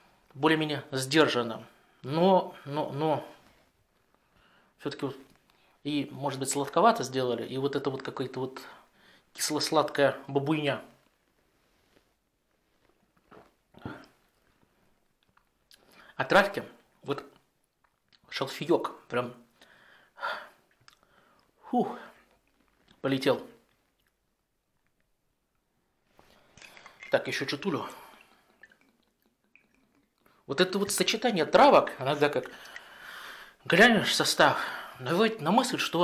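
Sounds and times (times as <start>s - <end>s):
faint mouth clicks: 20.7s - 21.1s.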